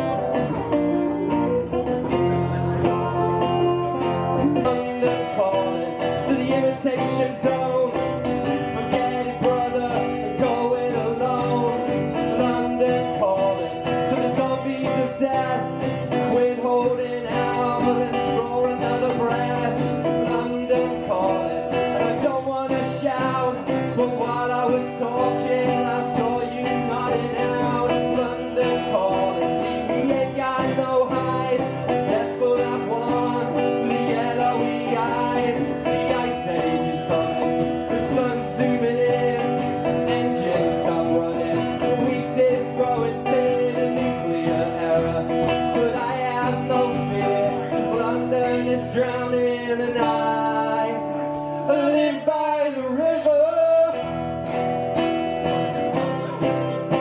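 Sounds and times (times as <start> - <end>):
acoustic guitars strummed: 0.0 - 57.0
man singing: 0.0 - 57.0.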